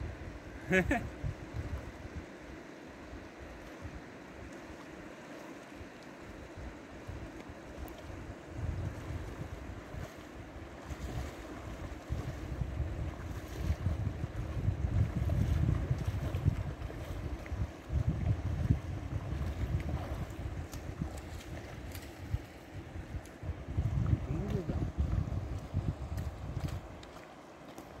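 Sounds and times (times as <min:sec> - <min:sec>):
river flowing: 0:01.6 - 0:13.9, 0:18.9 - 0:23.9, 0:25.3 - 0:28.0
wind buffeting microphone: 0:07.0 - 0:27.1.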